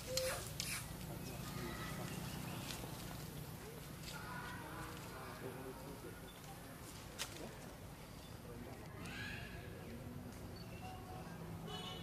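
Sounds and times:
high monkey calls: 0.0 - 2.5.

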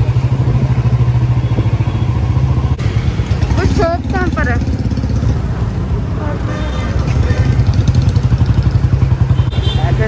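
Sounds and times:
scooter engine running: 0.0 - 10.0.

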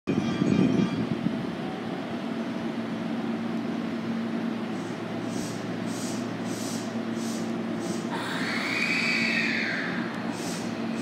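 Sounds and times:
electric train humming: 0.1 - 11.0
train rumble: 0.1 - 11.0.

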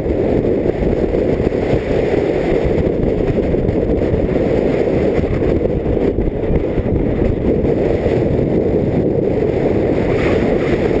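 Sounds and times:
strong wind on microphone: 0.0 - 11.0.

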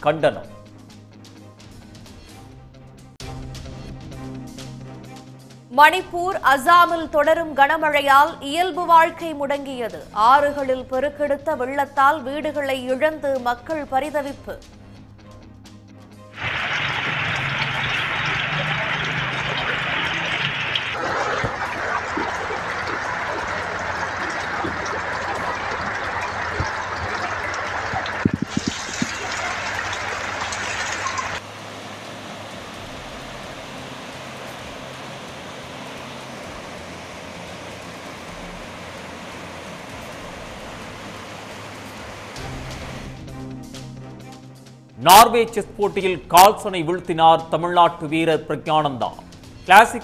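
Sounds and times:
rushing floodwater: 16.4 - 43.0.

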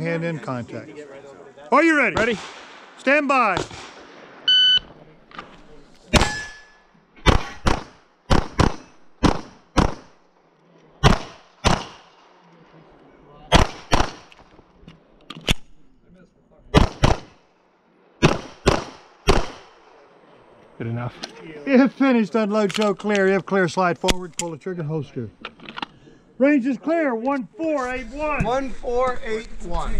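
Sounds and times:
pistol shots with echo: 2.1 - 3.0, 3.6 - 4.5, 6.1 - 10.2, 11.0 - 12.2, 13.5 - 14.4, 16.7 - 17.4, 18.2 - 19.9.

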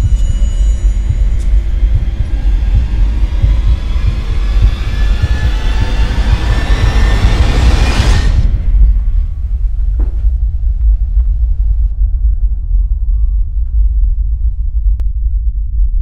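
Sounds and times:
low rumbling drone: 0.0 - 16.0.

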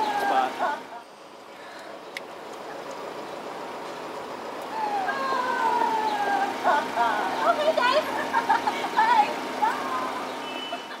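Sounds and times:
high-pitched wavering voices: 0.0 - 1.0, 4.7 - 8.3
steady background hum: 0.0 - 11.0.

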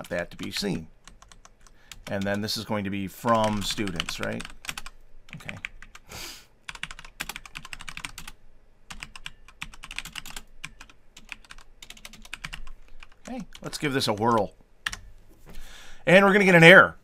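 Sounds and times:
computer keyboard typing: 0.0 - 2.4, 3.2 - 6.0, 6.7 - 15.0.

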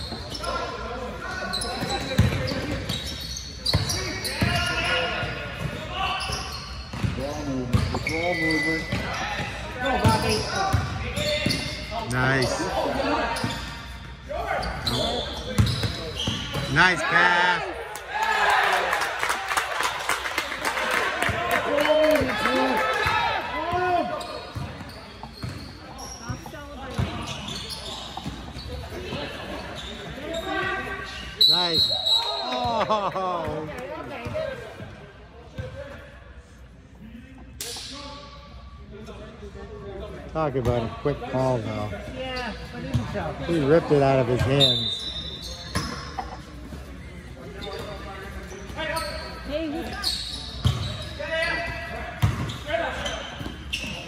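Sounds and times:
echoing voices in a hall: 25.8 - 53.2.

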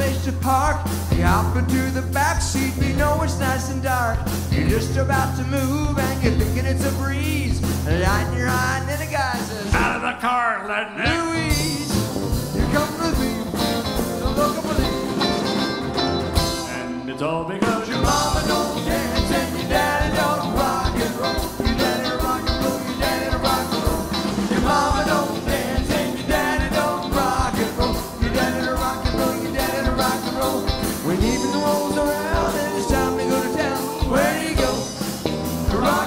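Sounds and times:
electric bass: 0.0 - 9.9, 11.2 - 17.1, 17.8 - 36.0
electric and acoustic guitars: 0.0 - 10.0, 11.0 - 36.0
drum beat: 0.0 - 10.1, 11.4 - 16.7, 17.7 - 36.0
person singing: 0.0 - 15.3, 16.5 - 36.0.

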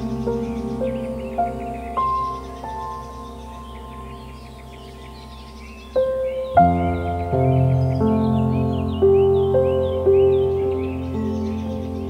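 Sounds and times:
faint bird chirps: 0.0 - 12.0
soft ambient music: 0.0 - 12.0.

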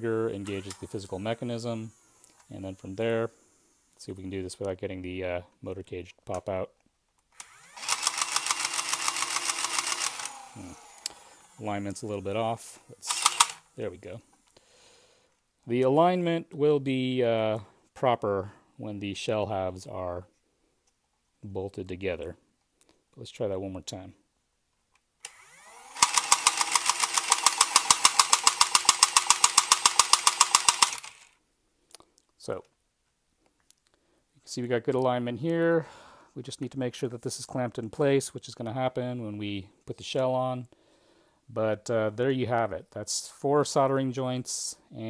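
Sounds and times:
toy blaster motors whining: 0.4 - 4.0, 7.4 - 13.8, 25.2 - 31.4
rapid mechanical clacking: 26.0 - 31.3.

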